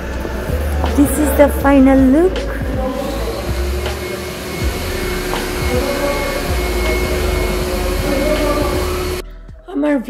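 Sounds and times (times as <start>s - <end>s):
machine running with rushing noise: 2.7s - 9.2s
faint steady whine: 2.8s - 9.2s.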